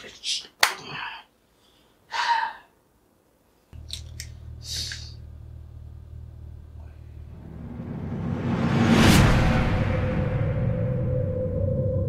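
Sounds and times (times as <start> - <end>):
low steady drone: 3.8 - 12.0.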